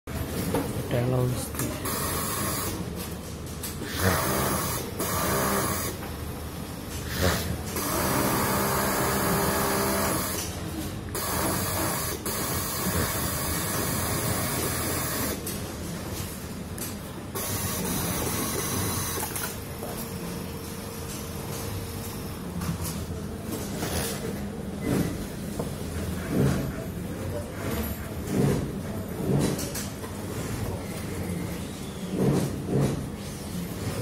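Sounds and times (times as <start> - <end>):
sewing machine stitching: 3.8 - 6.0, 7.0 - 10.5, 11.2 - 15.4.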